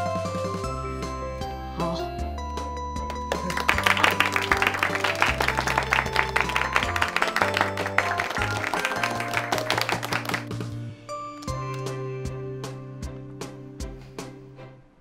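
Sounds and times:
background music with bass: 0.0 - 14.7
students applauding: 3.1 - 10.6.

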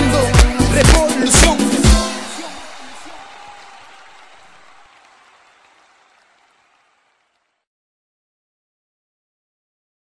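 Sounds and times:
song ending: 0.0 - 3.3.

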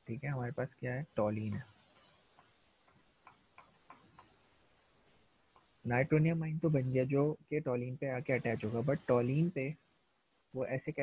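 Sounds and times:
stylus tapping and clicking: 1.9 - 4.6, 5.5 - 5.8.

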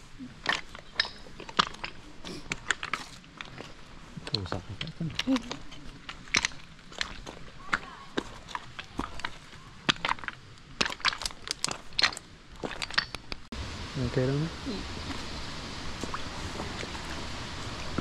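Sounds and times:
footsteps crunching on stone chippings: 0.1 - 13.5.

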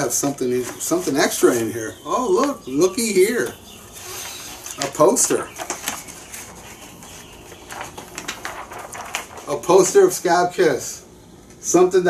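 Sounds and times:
paper rustling and crinkling: 0.0 - 10.2.

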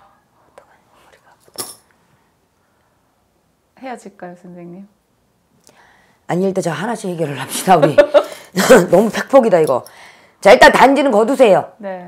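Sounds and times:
soft whispered breathing: 0.0 - 1.5.

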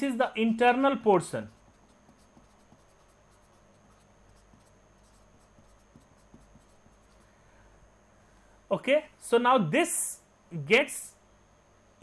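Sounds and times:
faint high-pitched whine: 0.0 - 12.0
pen scratching on paper: 1.4 - 7.3.

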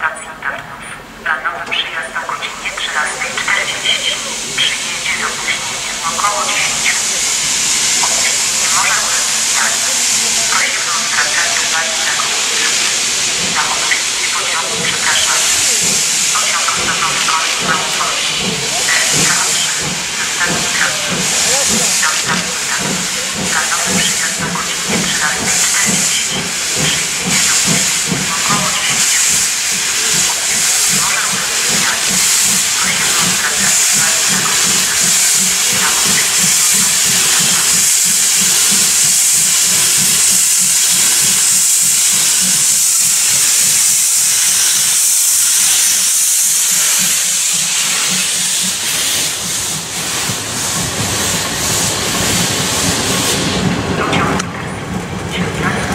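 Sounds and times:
steam locomotive hissing: 0.3 - 55.9
rhythmic steam exhaust beat: 1.7 - 55.9.

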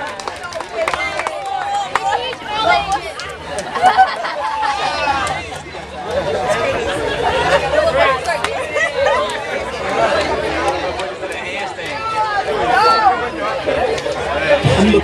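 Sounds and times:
overlapping crowd chatter: 0.0 - 15.0.

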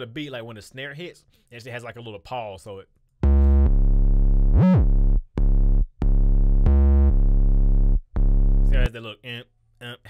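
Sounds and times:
deep bass line: 3.2 - 8.9.

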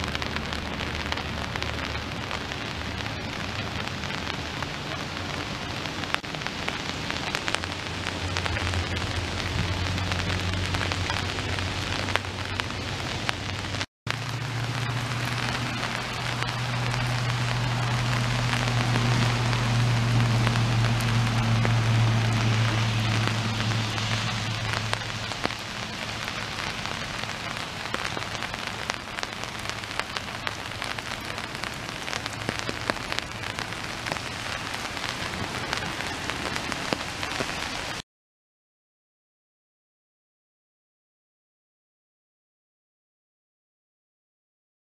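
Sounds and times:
rain falling on a lake: 0.0 - 38.0.

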